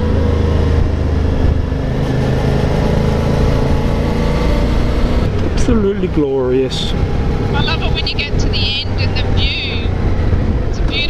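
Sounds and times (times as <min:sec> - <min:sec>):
motorcycle engine running: 0:00.0 - 0:11.0
wind rush: 0:07.3 - 0:11.0.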